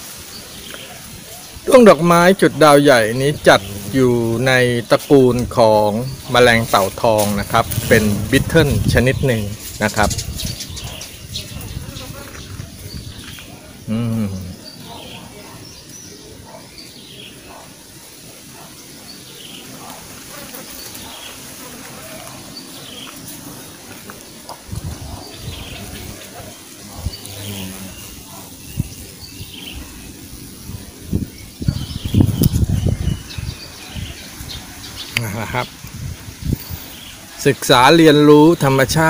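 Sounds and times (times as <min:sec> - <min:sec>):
small birds chirping: 0:00.0 - 0:39.0
low rumbling bursts: 0:07.4 - 0:10.6.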